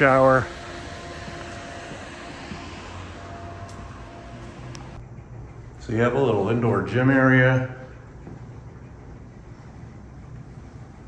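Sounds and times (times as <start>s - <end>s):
faint mechanical hum: 0.0s - 11.0s.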